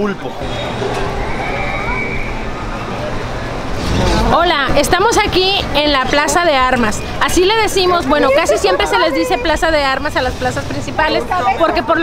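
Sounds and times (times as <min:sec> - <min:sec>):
people's voices: 0:00.0 - 0:12.0
traffic rumble: 0:00.0 - 0:12.0.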